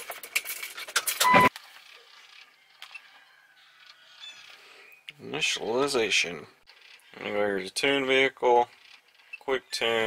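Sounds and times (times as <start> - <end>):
short loud electronic beep: 1.2 - 1.5.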